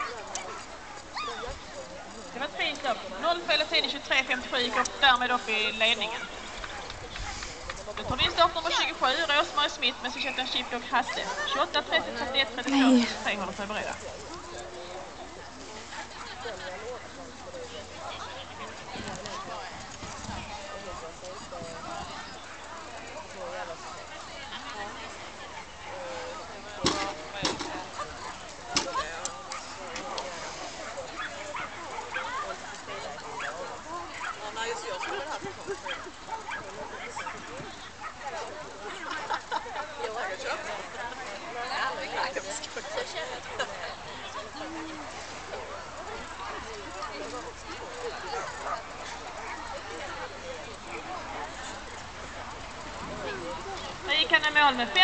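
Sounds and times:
people's voices: 0.0s - 55.0s.

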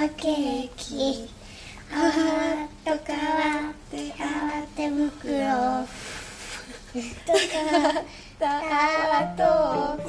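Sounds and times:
child singing jingle: 9.0s - 10.0s.

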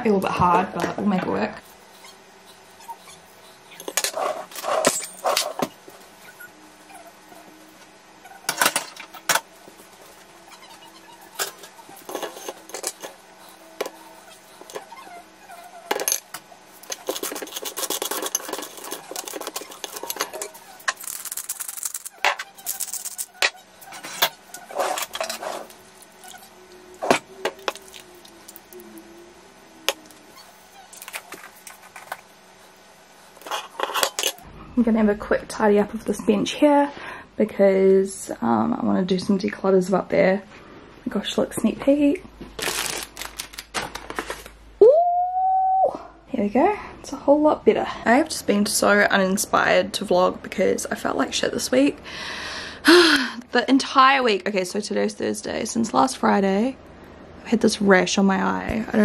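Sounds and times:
fork scraping and mashing avocado: 1.6s - 5.8s, 9.8s - 15.9s, 16.8s - 28.9s, 33.4s - 34.4s.

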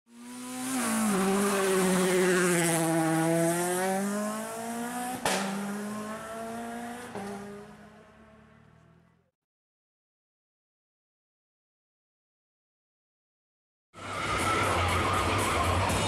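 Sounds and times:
race car engine revving high: 0.1s - 8.9s.

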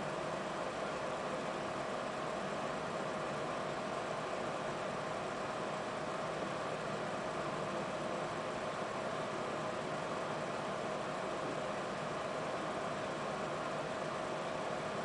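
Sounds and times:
faint hum: 0.0s - 15.0s.

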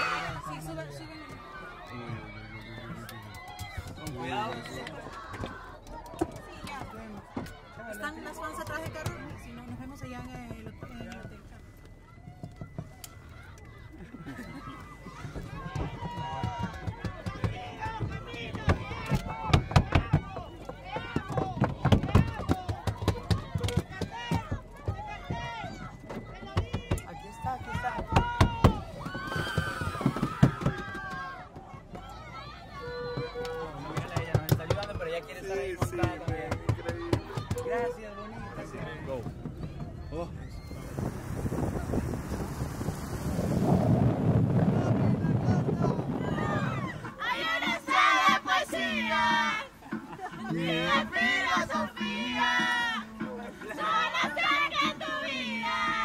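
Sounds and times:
excited shouting: 0.0s - 8.6s, 44.8s - 56.0s
traffic noise: 0.0s - 52.0s
wind buffeting microphone: 38.3s - 47.2s.

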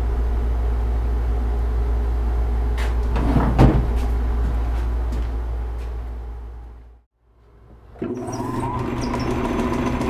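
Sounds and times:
steady low hum: 0.0s - 8.0s.

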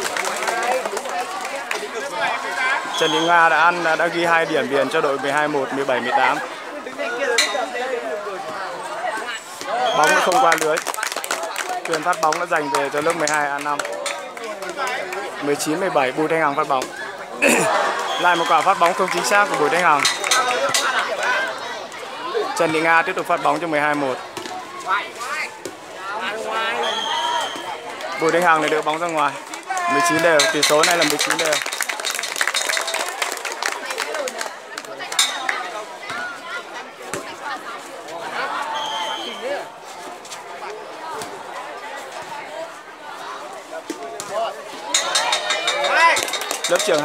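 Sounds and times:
spectators shouting and chattering: 0.0s - 47.0s
sharp claps: 10.0s - 15.2s, 28.6s - 35.6s, 45.0s - 47.0s.

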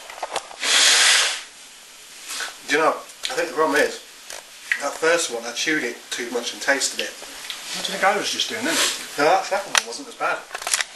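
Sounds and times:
loud rush of air: 0.0s - 2.7s, 7.6s - 9.4s.

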